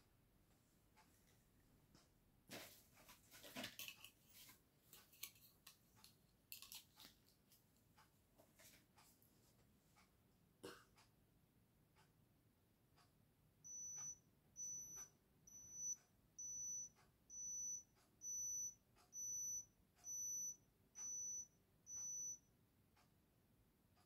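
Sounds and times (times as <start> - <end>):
digital thermometer beeping: 13.6 - 22.5.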